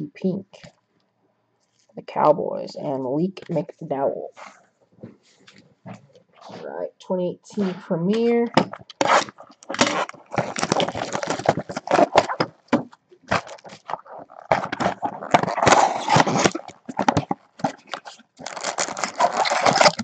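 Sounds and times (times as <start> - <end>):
cardboard and wrapping crinkling: 7.6 - 20.0.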